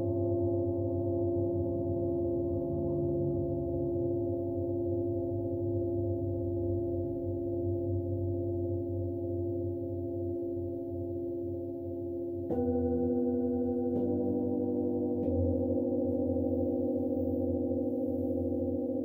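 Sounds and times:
low hum: 0.1 - 19.0
metal bowl struck: 12.4 - 19.0
singing bowls ringing: 12.5 - 19.0.

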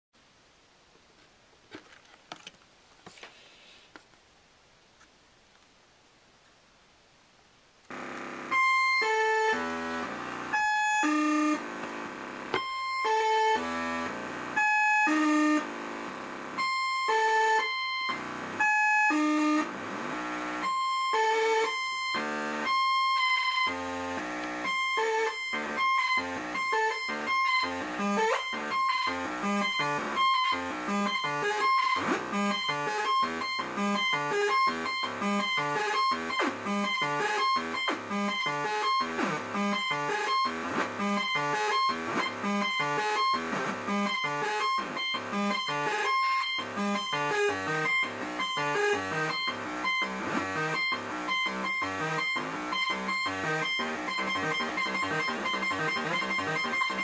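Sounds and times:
buzzy square-wave sequencer tones: 7.9 - 57.0.

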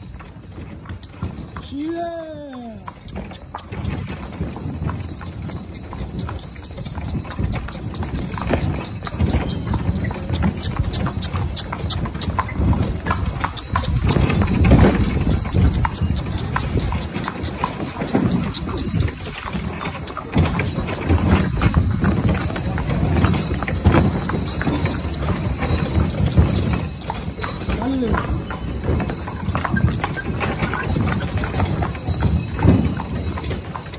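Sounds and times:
horse hooves clip-clopping: 0.0 - 33.9.

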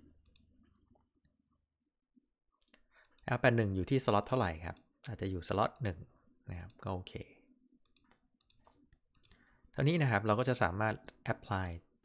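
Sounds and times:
computer mouse clicks: 0.2 - 0.5, 6.6 - 6.8, 7.8 - 9.4.

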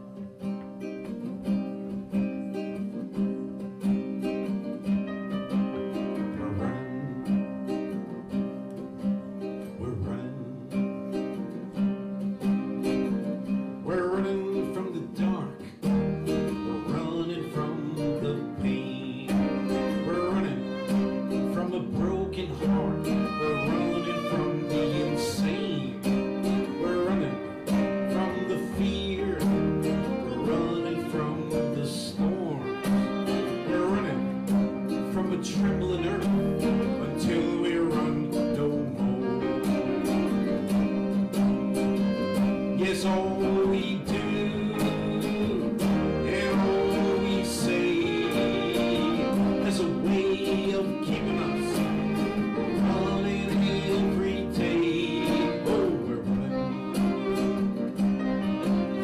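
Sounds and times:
acoustic guitar: 0.0 - 59.0
violin: 0.0 - 59.0.

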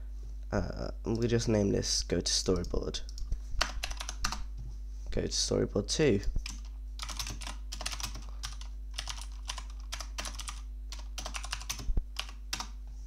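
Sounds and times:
faint low hum: 0.0 - 13.0
typing on computer keyboard: 2.6 - 4.4, 6.4 - 12.7.

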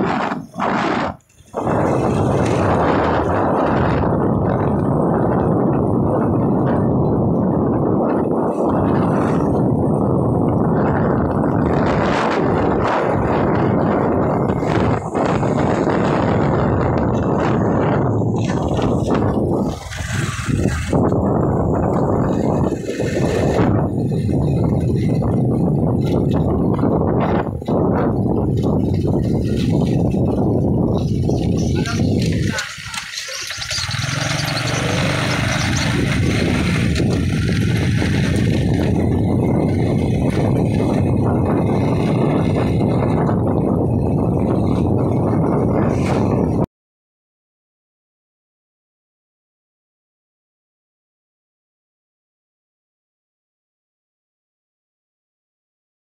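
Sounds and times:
motorcycle road noise: 0.0 - 46.7
wind rushing over microphone: 0.0 - 46.7.

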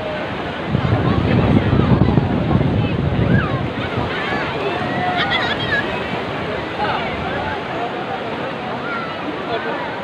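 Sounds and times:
wind rumbling on microphone: 0.0 - 7.8
sea surf washing on beach: 0.0 - 10.0.

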